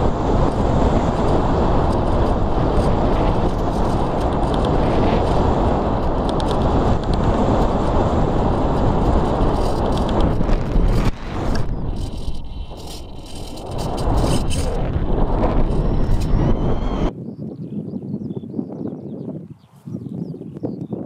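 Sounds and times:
airflow over microphone: 0:00.0 - 0:21.0.

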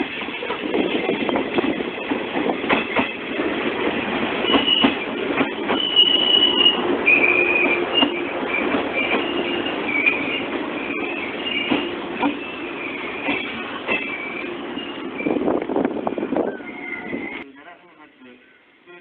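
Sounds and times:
train wheels knocking on rail joints: 0:00.0 - 0:07.0, 0:07.6 - 0:10.0, 0:11.4 - 0:12.6, 0:13.2 - 0:14.2
high-pitched metallic squeal: 0:05.7 - 0:15.5, 0:16.2 - 0:17.4.

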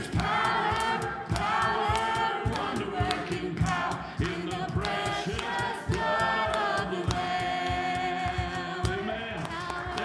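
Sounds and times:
several voices singing: 0:00.0 - 0:10.0
steady drum beat: 0:00.0 - 0:10.0
worship band playing: 0:00.0 - 0:10.0.

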